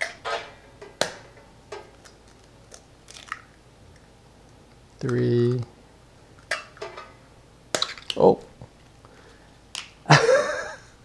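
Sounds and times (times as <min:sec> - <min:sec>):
eggshell crackling apart: 0:01.9 - 0:04.1, 0:07.7 - 0:08.2, 0:09.7 - 0:10.0.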